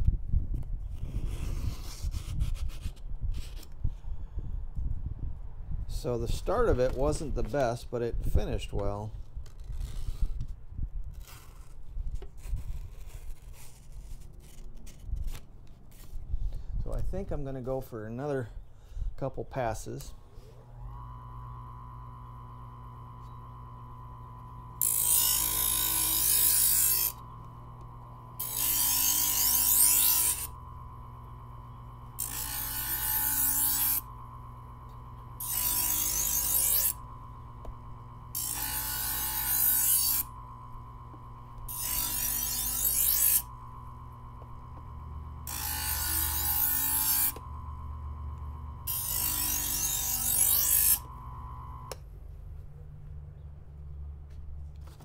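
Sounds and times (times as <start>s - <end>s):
electric knife sharpener motor hum: 20.6s - 52.0s
knife blade grinding: 24.8s - 27.2s, 28.4s - 30.6s, 32.2s - 34.1s, 34.9s - 37.0s, 38.3s - 40.3s, 41.6s - 43.5s, 45.4s - 47.4s, 48.8s - 51.1s.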